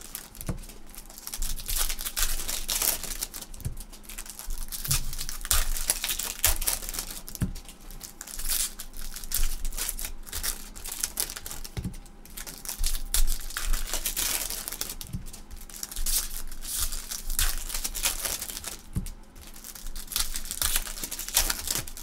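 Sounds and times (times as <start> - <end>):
plastic wrappers crinkling: 0.0 - 22.0.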